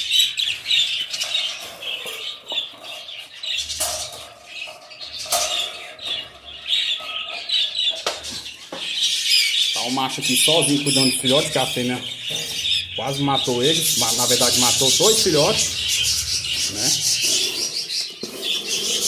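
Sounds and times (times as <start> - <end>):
budgerigars chattering: 0.0 - 19.0.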